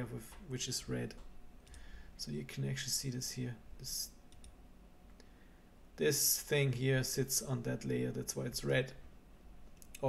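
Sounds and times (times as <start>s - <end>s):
low steady hum: 0.0s - 10.0s
computer mouse clicks: 4.3s - 5.3s, 9.7s - 10.0s.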